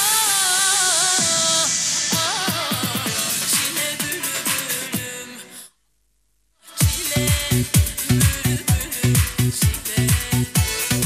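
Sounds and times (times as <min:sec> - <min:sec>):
electronic dance music: 0:00.0 - 0:05.5, 0:06.7 - 0:11.0.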